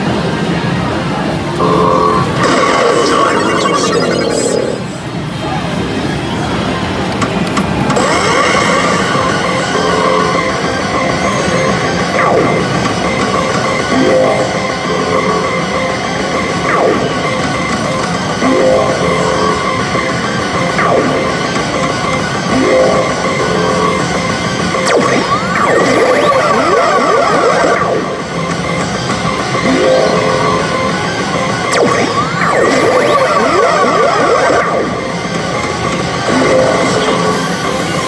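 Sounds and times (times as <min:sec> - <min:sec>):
electronic sound effects: 0:01.5 - 0:05.1, 0:07.8 - 0:38.0
sweeping electronic glides: 0:01.5 - 0:05.2, 0:08.0 - 0:38.0
slot machine rock music: 0:01.6 - 0:04.9, 0:07.9 - 0:38.0.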